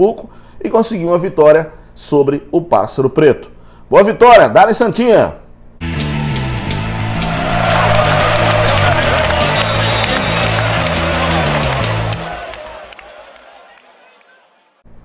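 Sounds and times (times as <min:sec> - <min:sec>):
rock music with electric guitar: 0:05.8 - 0:12.2
rushing whoosh effect: 0:06.2 - 0:10.8.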